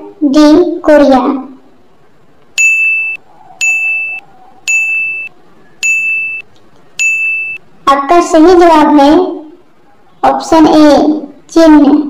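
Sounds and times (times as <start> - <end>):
high electronic ding: 2.6 - 6.4, 7.0 - 7.6.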